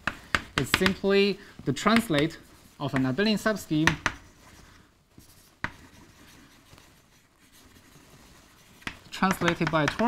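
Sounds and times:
chalk scratching on blackboard: 4.1 - 10.0.

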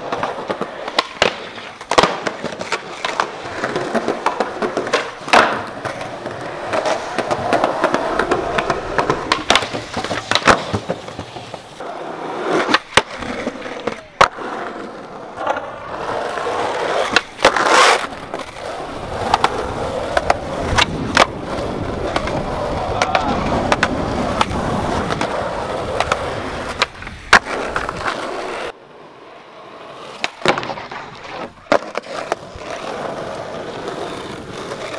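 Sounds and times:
skateboard clacking on ground: 0.0 - 34.9
skateboard wheels rolling on concrete: 0.0 - 34.9.

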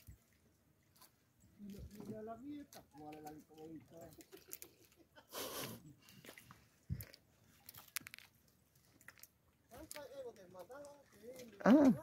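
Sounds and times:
faint small clicks: 7.0 - 8.4.

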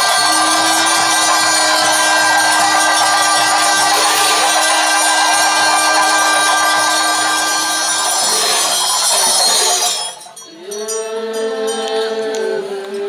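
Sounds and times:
low drone: 0.0 - 10.3
held chanting tone: 0.0 - 13.0
ringing cymbals and bells: 0.0 - 13.0.

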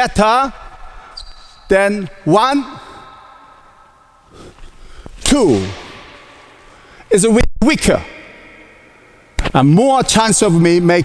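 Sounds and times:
short sharp breath: 2.7 - 3.6, 6.6 - 7.1.

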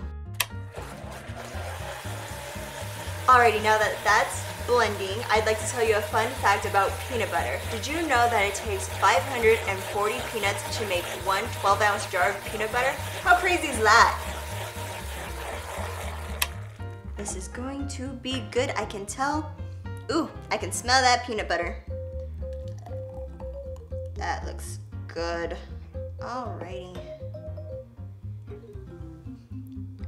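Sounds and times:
blender switch click: 0.3 - 0.6
blender running: 0.5 - 17.1.

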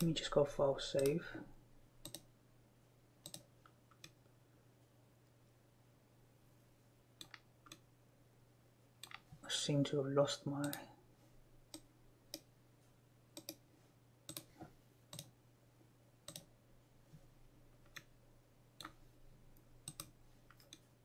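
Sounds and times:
computer mouse clicks: 2.0 - 2.3, 3.2 - 4.2, 7.2 - 7.8, 9.0 - 9.3, 11.7 - 12.5, 13.4 - 13.6, 14.3 - 15.4, 16.2 - 16.5, 17.8 - 18.1, 18.8 - 19.0, 19.8 - 20.9.

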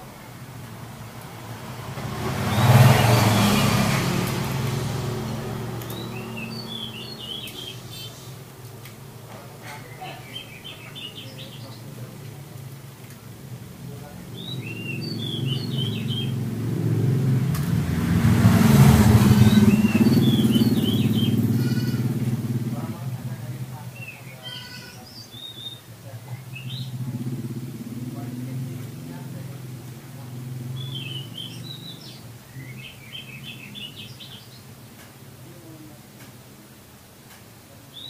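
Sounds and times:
motor vehicle passing: 0.0 - 35.8
bird singing: 5.2 - 8.3, 9.7 - 12.0, 14.3 - 16.6, 19.1 - 22.3, 23.8 - 27.3, 30.2 - 34.7.

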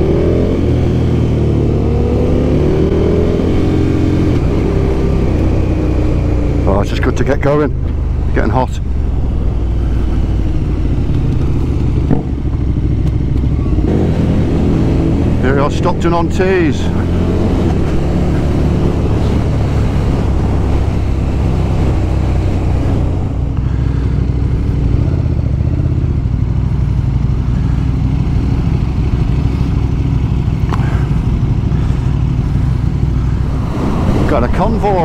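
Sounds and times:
motorcycle engine running: 0.0 - 35.0
wind rushing past microphone: 33.4 - 35.0.

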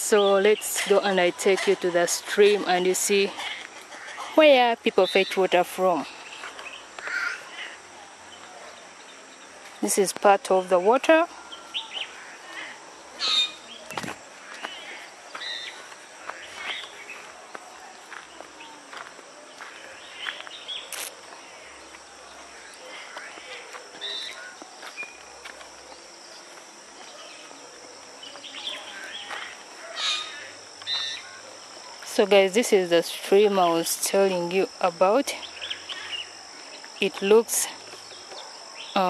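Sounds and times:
high-pitched insect drone: 0.0 - 39.0
footsteps on dirt path: 6.0 - 7.1, 13.5 - 29.7
bird chirps: 11.4 - 12.4, 24.0 - 25.3, 28.2 - 31.4.

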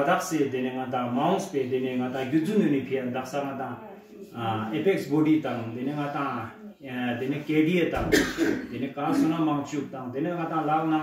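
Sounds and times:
man speaking: 0.0 - 11.0
throat clearing: 8.0 - 9.4.

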